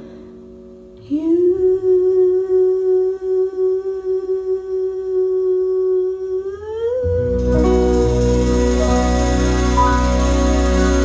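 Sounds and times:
woman singing a long note: 1.0s - 10.2s.

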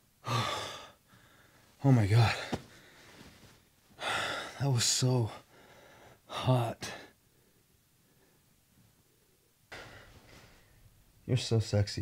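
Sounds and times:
man sighing: 0.2s - 1.4s
man speaking: 1.8s - 2.6s, 11.3s - 12.0s.

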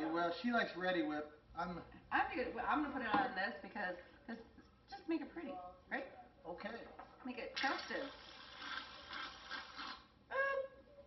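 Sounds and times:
person humming: 10.3s - 10.8s.

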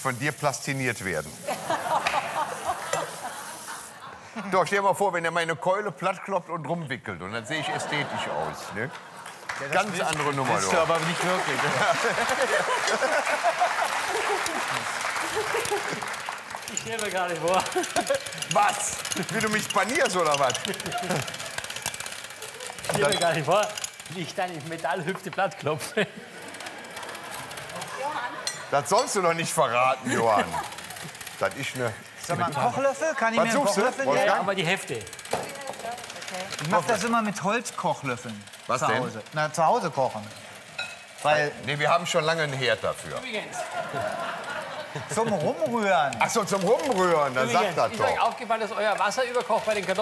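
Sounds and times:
electric hand mixer whisking: 0.0s - 4.0s, 9.8s - 50.0s
steady hiss: 0.0s - 4.6s
studio audience laughing: 1.4s - 4.5s, 7.4s - 23.0s, 25.6s - 28.9s, 29.7s - 34.1s, 43.3s - 47.9s
man laughing: 11.6s - 16.1s, 17.4s - 18.4s, 20.5s - 21.4s, 25.7s - 26.5s, 30.0s - 31.2s, 43.5s - 45.8s.

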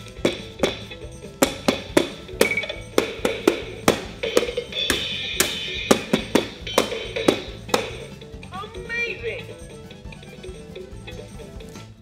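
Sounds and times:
drumsticks tapping plastic pads: 0.0s - 8.2s
electronic drum sounds: 0.0s - 8.3s
toy backing melody: 0.1s - 11.8s.

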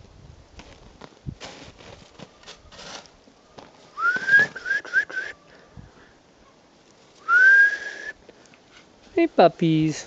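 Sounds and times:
person whistling: 4.0s - 5.4s, 7.3s - 8.2s.

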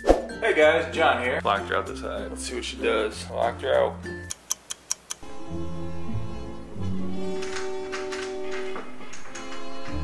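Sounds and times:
background music: 0.0s - 10.0s
quick sharp ticks: 4.3s - 5.2s.

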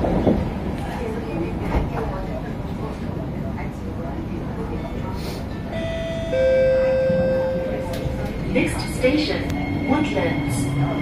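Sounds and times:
train car rumble: 0.0s - 11.0s
train traction equipment whining: 5.7s - 11.0s.

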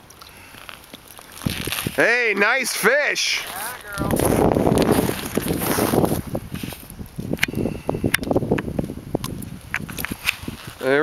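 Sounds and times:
snow crunching: 0.4s - 6.9s, 10.1s - 11.0s
jacket rustling: 3.4s - 6.9s.

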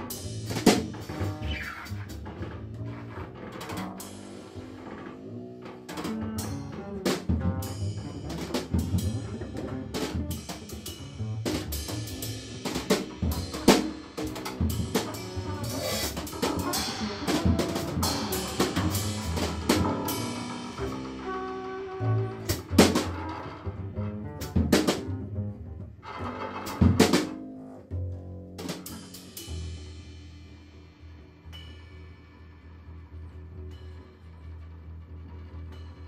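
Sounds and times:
drum kit played with sticks: 0.0s - 36.0s
plucked double bass: 0.0s - 36.0s.

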